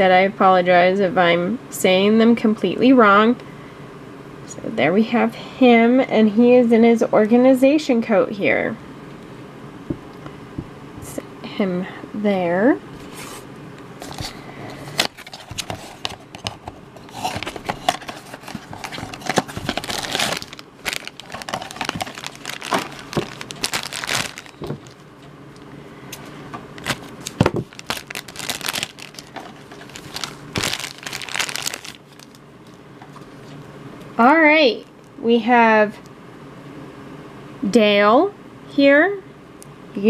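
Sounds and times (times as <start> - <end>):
crackling and rustling: 13.0 - 25.4, 26.8 - 33.7
foil bag crinkling and tearing: 14.0 - 25.0, 26.8 - 33.4.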